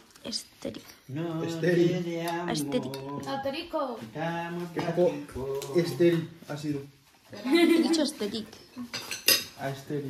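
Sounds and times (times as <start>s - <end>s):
fork clinking and scraping on plate: 2.2s - 3.3s, 8.5s - 9.8s.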